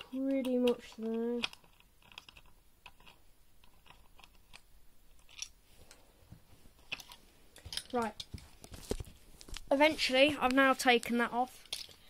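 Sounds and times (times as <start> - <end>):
small parts clicking and knocking: 0.0 - 6.0, 6.8 - 9.7, 10.4 - 12.0.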